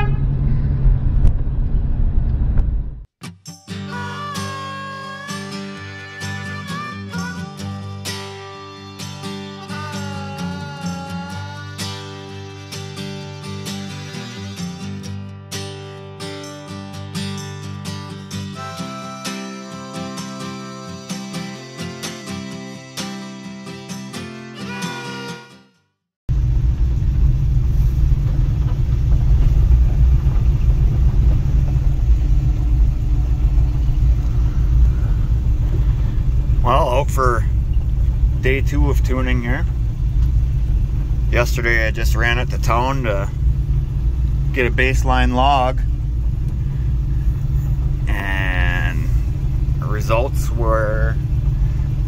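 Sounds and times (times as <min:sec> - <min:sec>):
car engine rumble from inside: 0:00.0 - 0:03.1, 0:26.3 - 0:52.0
guitar music: 0:03.2 - 0:25.8.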